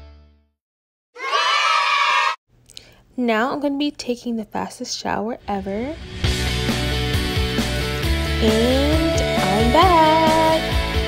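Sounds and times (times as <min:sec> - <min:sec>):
excited cheering and shouting: 0:01.2 - 0:02.4
background music: 0:05.6 - 0:11.0.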